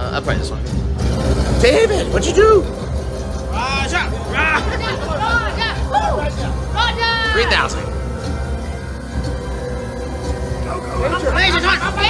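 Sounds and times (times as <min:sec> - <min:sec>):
people shouting excitedly: 0:01.7 - 0:08.2.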